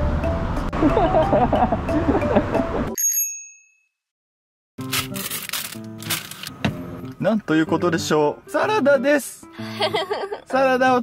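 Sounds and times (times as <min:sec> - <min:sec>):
street noise: 0:00.0 - 0:03.0, 0:04.8 - 0:08.6
high bell-like ding: 0:02.9 - 0:03.9
background music: 0:04.8 - 0:11.0.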